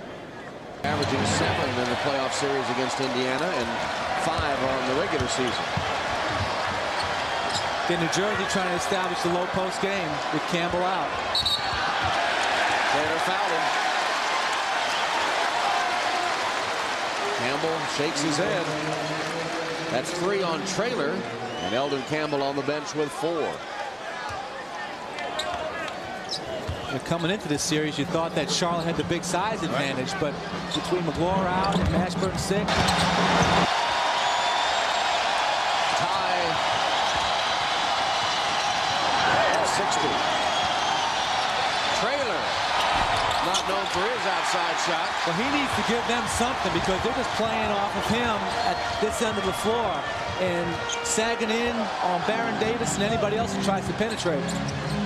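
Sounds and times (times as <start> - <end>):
arena crowd noise: 0.0 - 55.0
referee's whistle: 11.3 - 11.9, 21.4 - 22.4.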